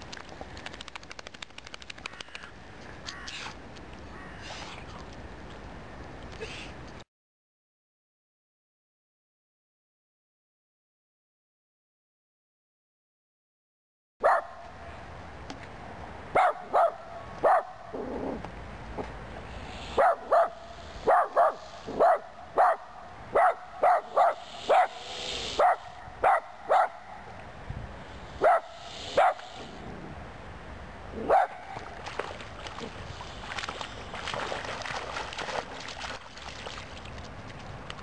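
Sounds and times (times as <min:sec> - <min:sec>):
dog barking: 0:14.2 - 0:14.6, 0:16.4 - 0:17.8, 0:20.0 - 0:25.0, 0:25.6 - 0:27.0, 0:28.4 - 0:29.5, 0:31.3 - 0:31.6.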